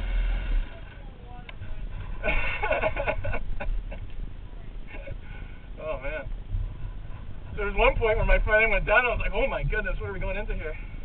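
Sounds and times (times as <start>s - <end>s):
dirt bike engine idling: 0.0s - 11.0s
voices and laughter: 1.8s - 6.0s.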